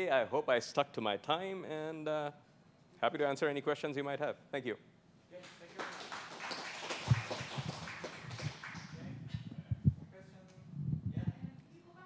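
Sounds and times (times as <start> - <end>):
audience applauding: 5.4 - 9.2.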